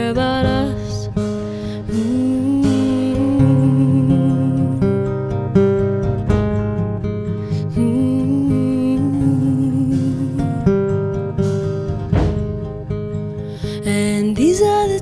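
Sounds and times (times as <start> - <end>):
acoustic guitar chords: 0.0 - 15.0.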